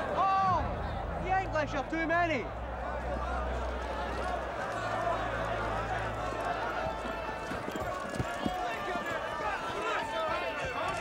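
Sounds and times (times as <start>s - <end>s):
crowd of men talking: 0.0s - 11.0s
horse hooves clopping on grass: 6.3s - 11.0s.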